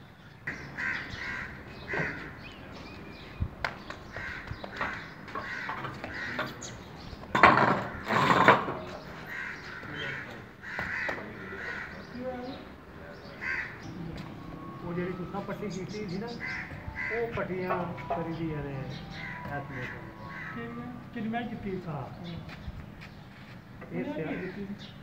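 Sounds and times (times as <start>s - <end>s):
birds calling: 0.0s - 25.0s.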